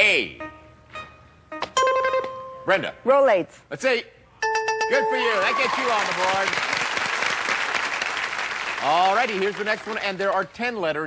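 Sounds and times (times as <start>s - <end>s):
audience applauding: 5.2s - 10.6s.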